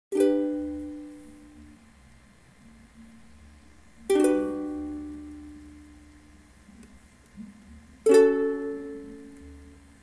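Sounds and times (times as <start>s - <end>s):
ukulele chord strummed: 0.1s - 2.0s, 2.6s - 10.0s
soft low ukulele notes: 0.1s - 10.0s.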